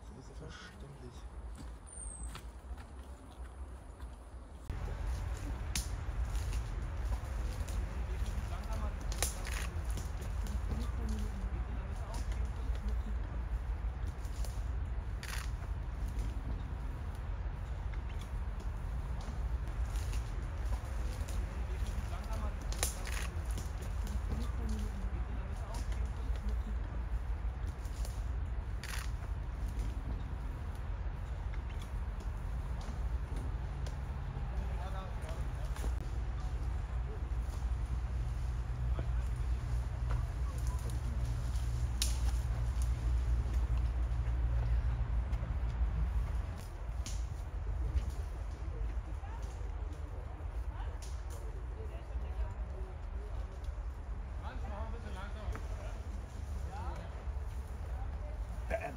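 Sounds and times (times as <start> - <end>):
steady low rumble: 0.0 - 58.9
people talking: 7.1 - 13.6, 20.8 - 27.2, 34.4 - 37.7, 38.7 - 42.9, 48.4 - 58.9.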